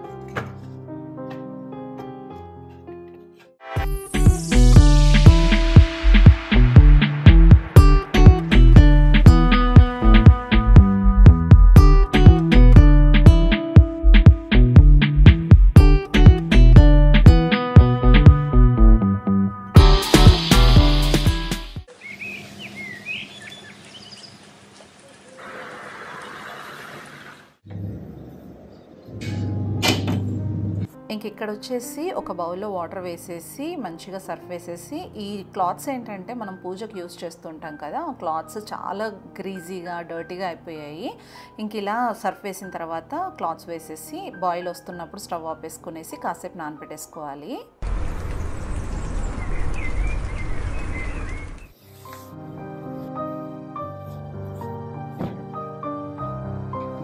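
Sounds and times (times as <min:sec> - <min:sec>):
bird chirps: 0:21.9 - 0:24.4, 0:48.3 - 0:51.8.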